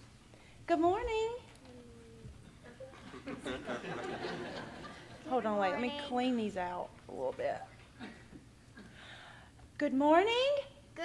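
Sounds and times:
child's high-pitched vocal sound: 1.6s - 2.4s.

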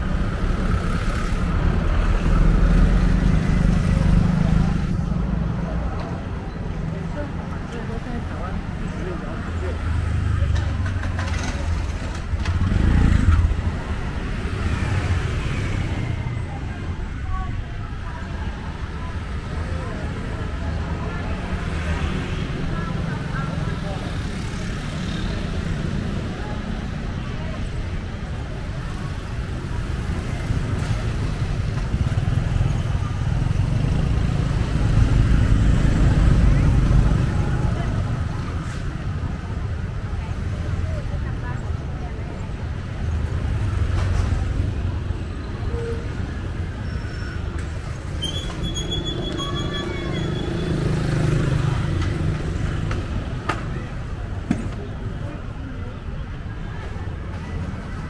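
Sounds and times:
motorbike and car engines rumbling: 0.0s - 58.0s
murmur of voices: 0.0s - 58.0s.

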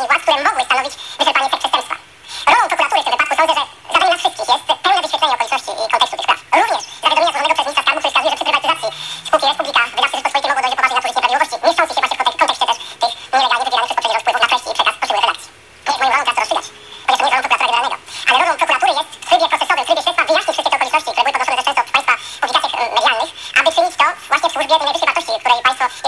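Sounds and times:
person talking over telephone: 0.0s - 26.0s.

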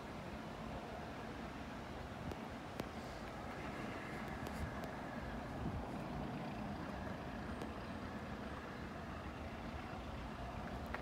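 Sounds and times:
steam locomotive low rumble: 0.0s - 11.0s.

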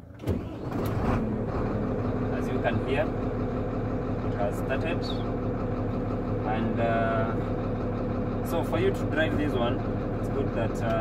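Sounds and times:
diesel truck engine idling: 0.0s - 11.0s.

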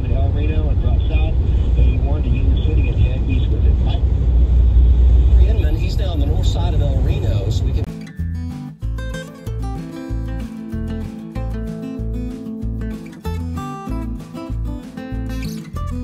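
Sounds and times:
car cabin road and engine noise: 0.0s - 7.9s.

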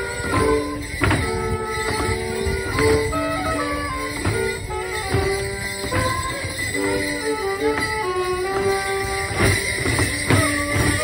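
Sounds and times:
dancers' feet on stage: 0.0s - 11.0s
leg bells jingling: 0.0s - 11.0s
morris dance tune: 0.0s - 11.0s.

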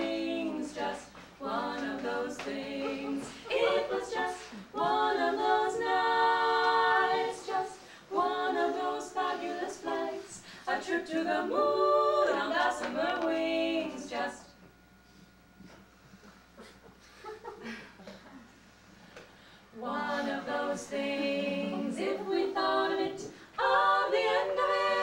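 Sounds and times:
women singing in harmony: 0.0s - 14.6s, 19.7s - 25.0s.

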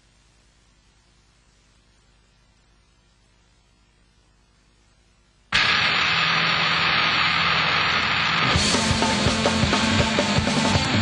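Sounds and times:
low steady hum: 0.0s - 9.0s
loud steady rushing noise: 5.6s - 11.0s.

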